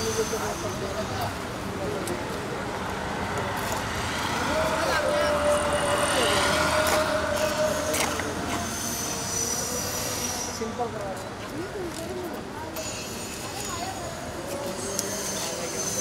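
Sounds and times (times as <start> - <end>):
indistinct voices: 0.0 - 16.0
traffic-like rumble: 0.0 - 16.0.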